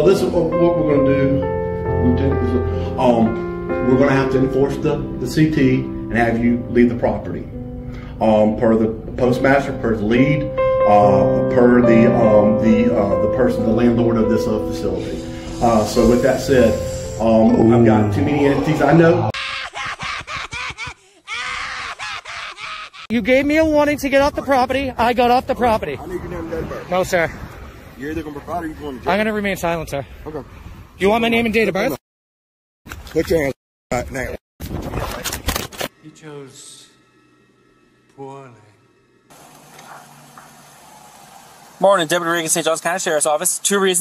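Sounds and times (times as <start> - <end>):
outdoor background hiss: 12.7 - 17.8, 35.9 - 44.0.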